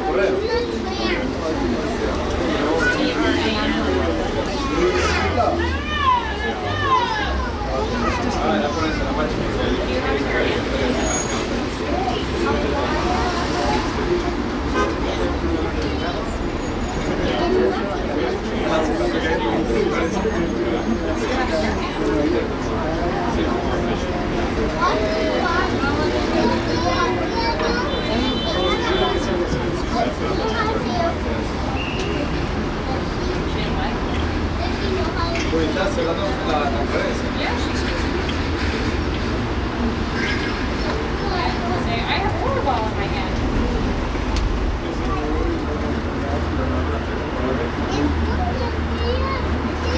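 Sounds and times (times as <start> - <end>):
faint passengers' voices: 0.0 - 49.9.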